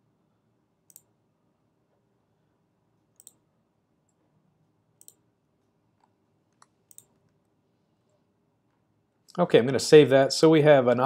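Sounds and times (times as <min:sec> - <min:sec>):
computer mouse clicks: 0:00.9 - 0:01.1, 0:03.1 - 0:03.4, 0:05.0 - 0:05.2, 0:06.0 - 0:07.5.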